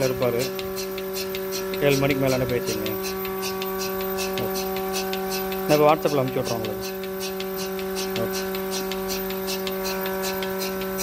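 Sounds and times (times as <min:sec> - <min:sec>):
hissing ticks: 0:00.0 - 0:11.0
milking machine motor hum: 0:00.0 - 0:11.0.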